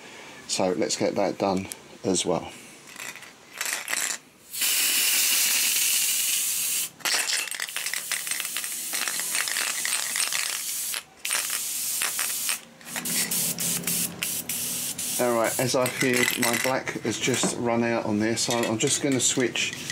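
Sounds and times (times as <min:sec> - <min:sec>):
aerosol spray can hissing: 0:04.5 - 0:07.0, 0:07.6 - 0:15.8.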